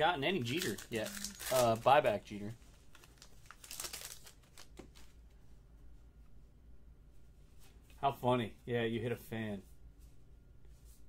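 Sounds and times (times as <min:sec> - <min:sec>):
low room hum: 0:00.0 - 0:11.0
paper cards rustling: 0:00.4 - 0:01.9, 0:02.6 - 0:05.2.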